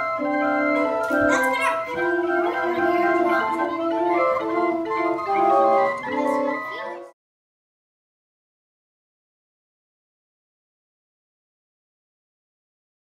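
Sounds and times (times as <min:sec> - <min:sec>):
pipe organ chords: 0:00.0 - 0:07.1.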